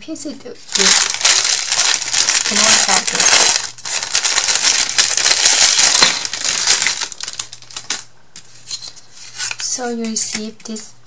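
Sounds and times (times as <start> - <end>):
plastic bag crinkling: 0.6 - 8.1.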